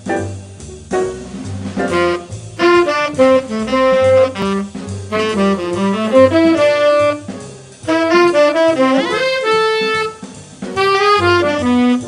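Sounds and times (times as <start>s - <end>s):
low bass notes: 0.4s - 12.0s
tenor saxophone jazz solo: 1.8s - 12.0s.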